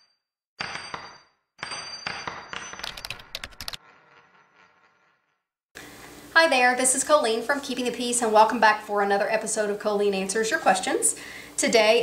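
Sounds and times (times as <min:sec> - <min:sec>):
quick run of sharp clicks: 0:02.8 - 0:03.8.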